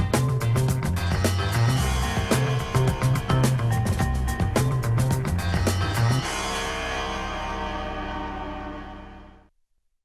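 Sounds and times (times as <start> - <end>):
theme music held chord: 1.5 - 9.5.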